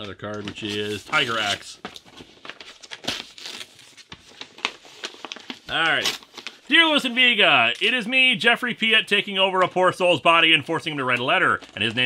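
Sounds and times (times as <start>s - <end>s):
paper rustling and crinkling: 0.0s - 8.1s, 10.8s - 12.0s.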